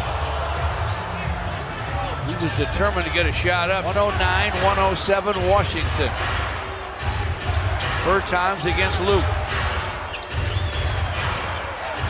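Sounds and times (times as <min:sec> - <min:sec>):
arena crowd noise: 0:00.0 - 0:12.0
sneaker squeaks: 0:09.4 - 0:12.0.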